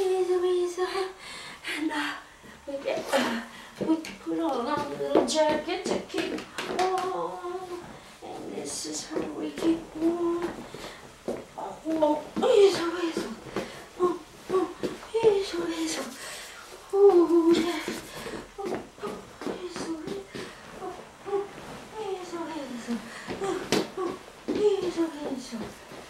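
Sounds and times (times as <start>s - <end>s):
person vocalizing wordless syllables: 14.0s - 16.2s, 16.9s - 25.7s.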